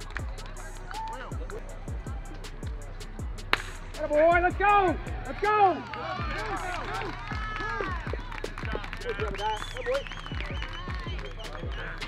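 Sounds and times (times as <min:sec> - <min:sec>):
background music: 0:00.0 - 0:12.0
bat hitting a baseball: 0:03.5 - 0:03.8.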